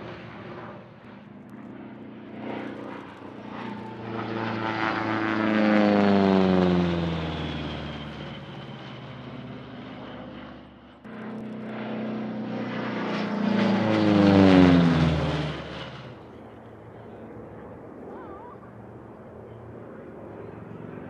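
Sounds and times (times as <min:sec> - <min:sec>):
propeller plane flying by: 0:00.0 - 0:21.0.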